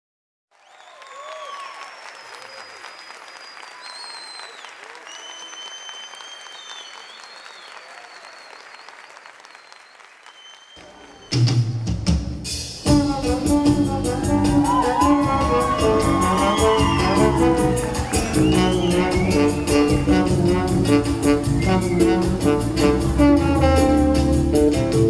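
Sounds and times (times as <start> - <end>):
audience applauding and cheering: 0.5 - 11.8, 13.4 - 25.0
high whistles: 0.6 - 11.6, 14.7 - 20.4, 21.2 - 22.4
live band playing: 11.2 - 25.0.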